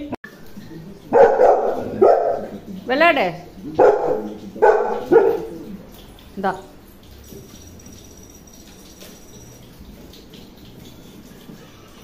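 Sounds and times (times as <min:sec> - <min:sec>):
dog barking: 0:01.1 - 0:02.6, 0:03.8 - 0:05.6.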